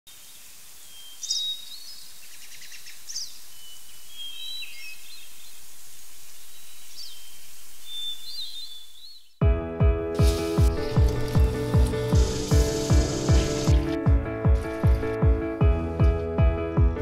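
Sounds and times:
birds calling: 0:00.8 - 0:09.4, 0:10.2 - 0:14.0
steady hiss: 0:10.2 - 0:14.0.

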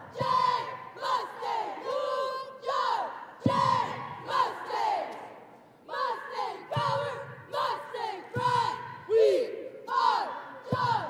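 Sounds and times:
cheerleaders shouting a cheer: 0:00.0 - 0:11.0.

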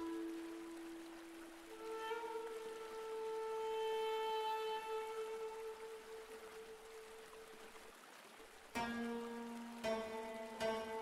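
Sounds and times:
long held instrumental note: 0:00.0 - 0:07.4.

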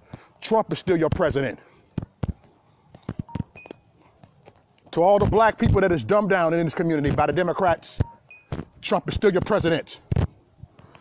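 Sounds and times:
faint beeps: 0:03.2 - 0:03.9, 0:08.0 - 0:08.6.

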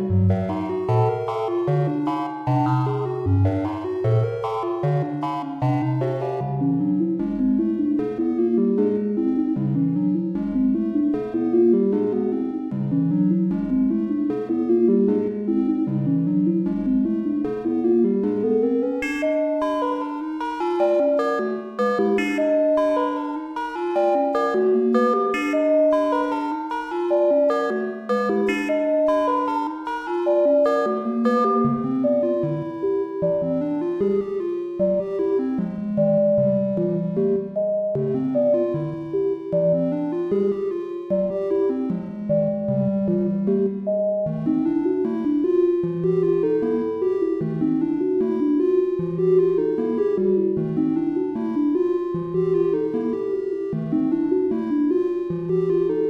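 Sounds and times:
sequenced synthesizer music: 0:16.6 - 0:56.0.

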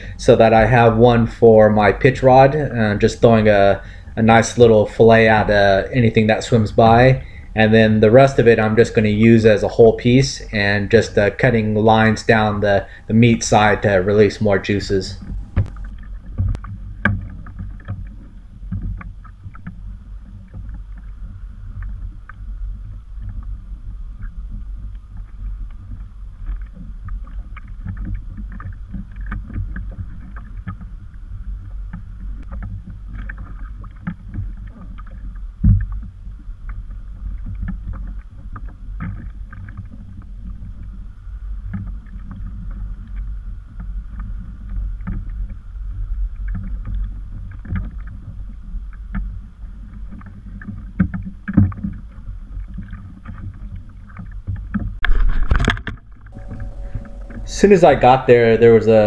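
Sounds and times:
waves lapping against hull: 0:00.0 - 0:59.0
wind rumbling on microphone: 0:00.0 - 0:59.0.

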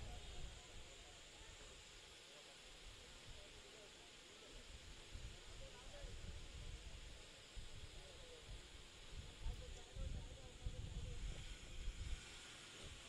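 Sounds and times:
wind rumble on microphone: 0:05.1 - 0:13.0.

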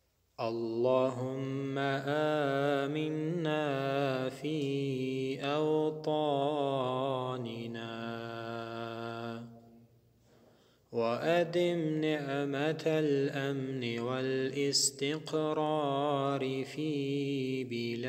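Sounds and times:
man chanting melodically: 0:00.4 - 0:09.5, 0:11.0 - 0:18.0.

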